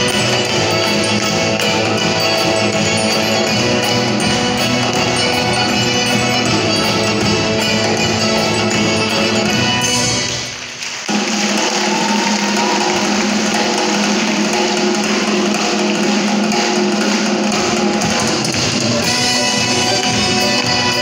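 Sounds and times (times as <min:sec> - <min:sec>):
accordion dance tune: 0:00.0 - 0:10.4, 0:12.9 - 0:21.0
percussion: 0:00.0 - 0:21.0.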